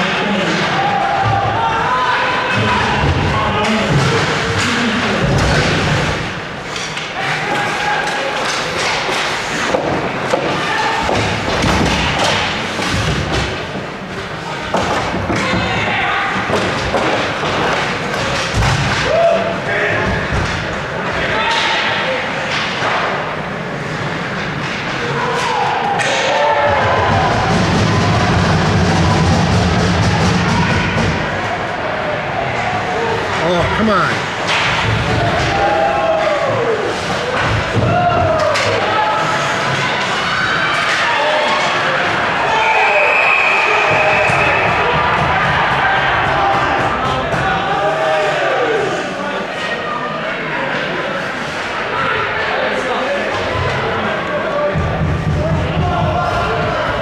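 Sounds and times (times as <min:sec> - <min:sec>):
indistinct shouting voices: 0:00.0 - 0:06.2.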